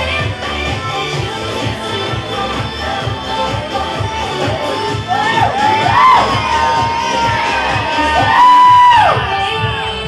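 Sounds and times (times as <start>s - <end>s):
pop music over sound system: 0.0s - 10.0s
audience cheering: 5.1s - 9.6s
high-pitched whoops: 5.1s - 9.6s.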